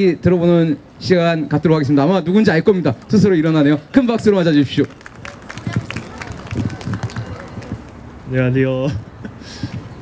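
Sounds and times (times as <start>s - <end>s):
scattered applause: 3.0s - 8.0s.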